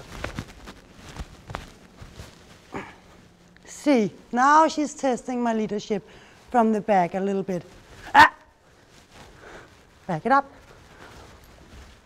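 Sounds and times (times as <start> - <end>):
woman calling sharply: 8.1 - 8.5.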